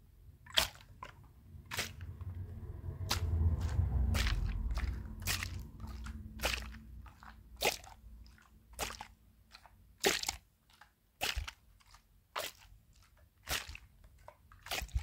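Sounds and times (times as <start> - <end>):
sponge squished against microphone: 0.4 - 15.0
low rumbling: 1.2 - 8.7.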